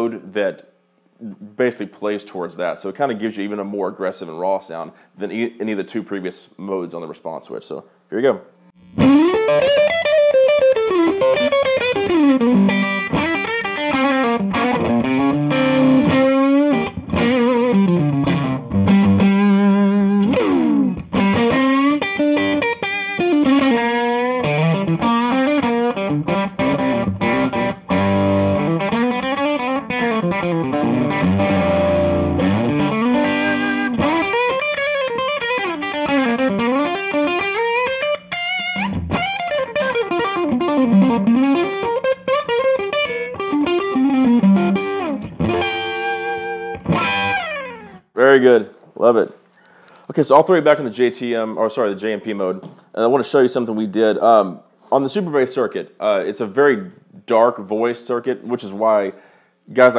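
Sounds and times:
electric guitar lead with bends: 8.8 - 48.1.

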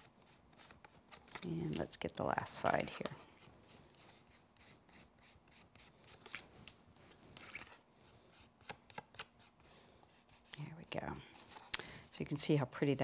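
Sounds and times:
card rubbing and rustling: 0.0 - 1.9, 2.5 - 11.7.

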